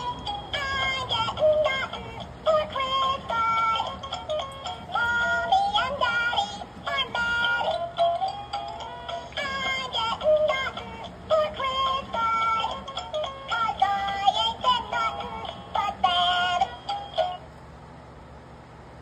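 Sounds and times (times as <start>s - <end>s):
high synthetic voice singing: 0.0s - 8.0s, 9.2s - 16.8s
musical backing from toy speaker: 0.0s - 17.4s.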